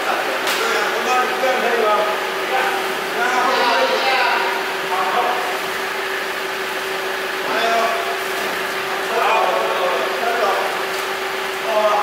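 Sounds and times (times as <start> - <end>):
men talking: 0.0 - 5.9, 7.3 - 12.0.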